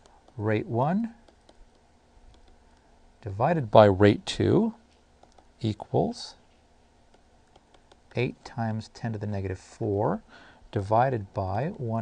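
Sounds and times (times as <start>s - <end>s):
stylus tapping on pen tablet: 0.0s - 0.4s, 1.2s - 2.6s, 5.2s - 5.5s, 7.1s - 8.2s.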